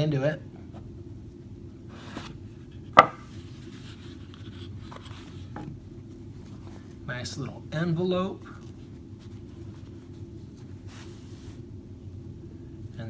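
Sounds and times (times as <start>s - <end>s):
sharp knock on table: 3.0s - 3.2s.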